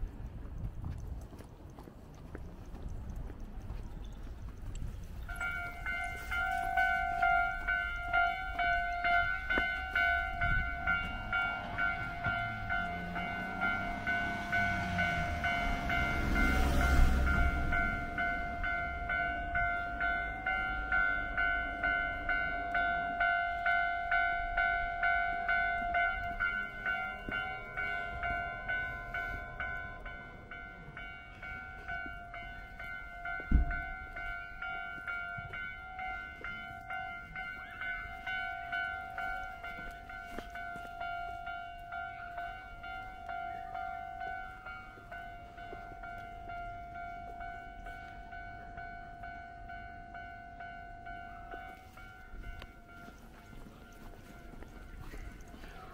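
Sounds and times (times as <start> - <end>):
level-crossing alarm bell ringing: 5.1 - 55.9
train rushing past: 5.3 - 23.0, 24.4 - 48.4.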